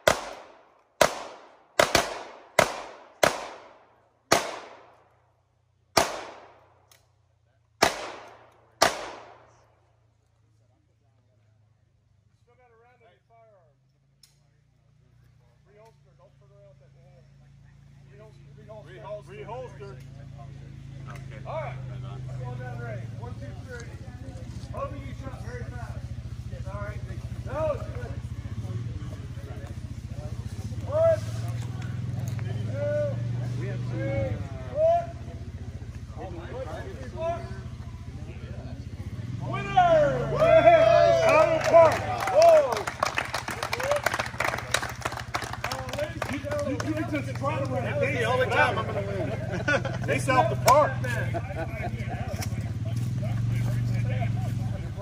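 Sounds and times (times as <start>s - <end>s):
men chattering: 15.4s - 55.0s.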